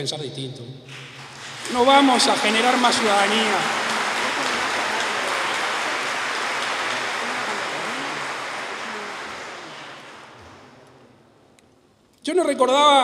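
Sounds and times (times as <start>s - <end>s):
audience applauding: 0.9s - 11.2s.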